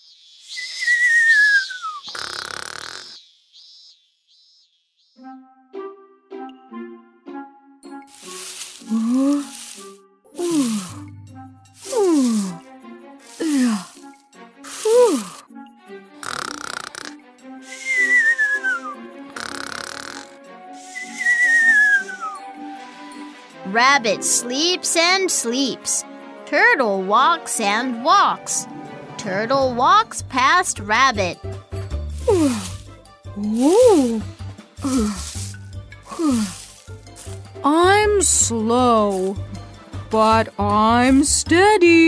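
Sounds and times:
cartoon falling whistle: 0.6 - 2.1, 17.7 - 19.0, 21.0 - 22.4
cartoon snoring with falling whistle: 0.6 - 3.2, 16.2 - 22.4
light plucked music: 5.2 - 42.0
breathy puff: 10.4 - 11.1, 11.8 - 12.6, 13.2 - 15.4, 16.2 - 18.0, 32.1 - 32.9, 34.8 - 37.4.

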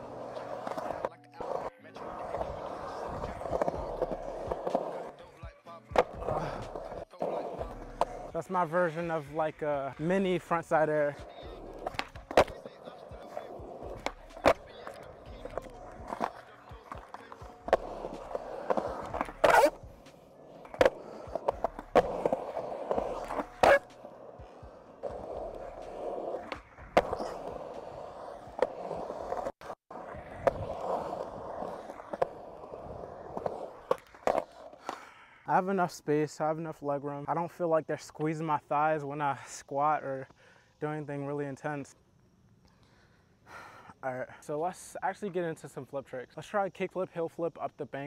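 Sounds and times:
skateboard clacks and knocks: 0.0 - 8.3, 11.2 - 35.0
skateboard wheels rolling on concrete: 0.0 - 48.0.

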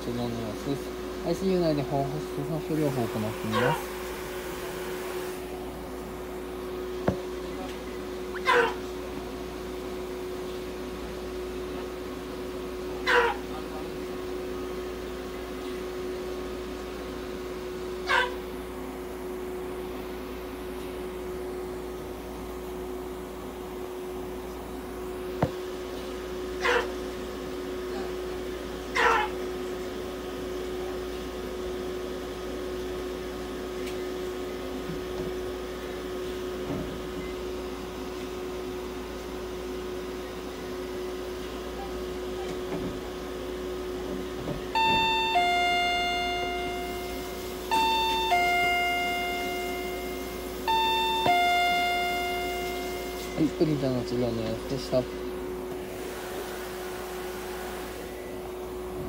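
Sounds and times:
low electrical hum: 0.0 - 59.0
electronic two-note chime: 44.8 - 53.7.

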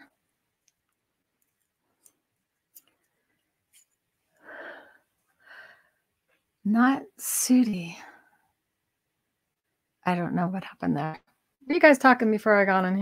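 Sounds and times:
person breathing softly: 4.3 - 6.1.

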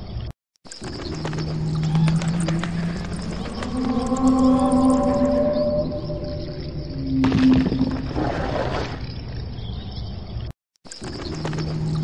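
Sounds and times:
low rumbling drone: 1.3 - 8.2
held tone: 1.8 - 8.0
rushing noisy swell: 2.1 - 7.3.

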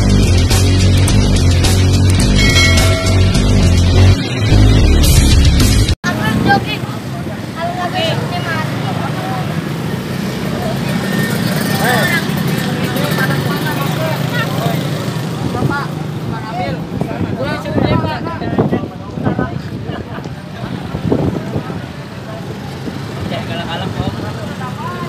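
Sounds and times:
intro music: 0.0 - 6.0
indistinct voices talking: 0.0 - 25.0.

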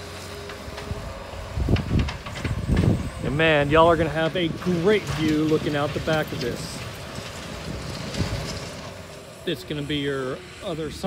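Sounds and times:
distant loader engine running: 0.0 - 11.0
wind rumbling on microphone: 0.8 - 4.5, 6.4 - 8.8.

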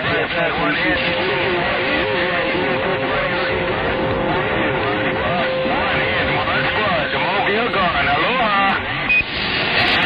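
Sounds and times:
faint garbled radio voices: 0.0 - 10.0
radio static hiss: 0.0 - 10.0.

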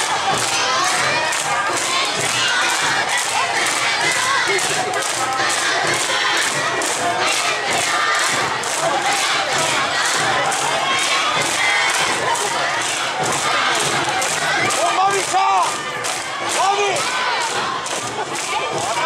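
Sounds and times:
dancers shouting rhythmic calls: 0.0 - 19.0.

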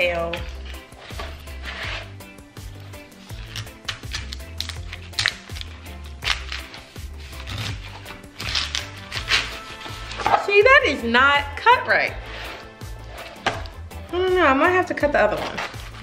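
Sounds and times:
background music with bass line: 0.0 - 16.0
knife cutting through pineapple: 0.3 - 10.4, 15.2 - 16.0.

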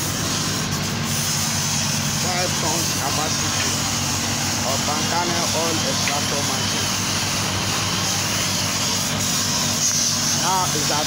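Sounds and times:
machinery humming with hiss: 0.0 - 11.0.

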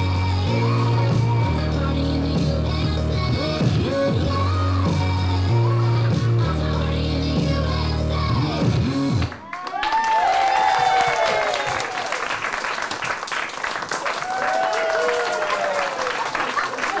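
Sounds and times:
music: 0.0 - 9.4
audience applauding: 9.2 - 17.0
voices whooping and cheering: 9.4 - 12.3, 14.0 - 17.0.

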